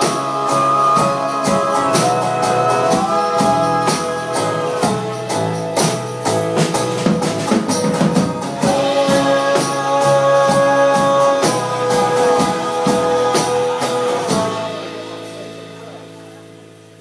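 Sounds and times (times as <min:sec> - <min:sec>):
tambourine beat: 0:00.0 - 0:16.2
acoustic band playing: 0:00.0 - 0:17.0.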